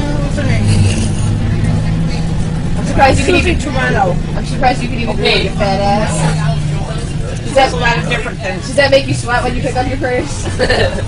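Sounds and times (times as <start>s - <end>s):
bus engine droning: 0.0s - 11.0s.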